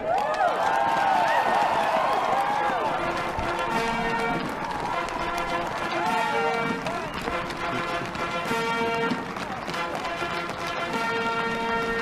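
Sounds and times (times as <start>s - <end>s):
crowd cheering: 0.0s - 12.0s
band music with held notes: 2.9s - 12.0s.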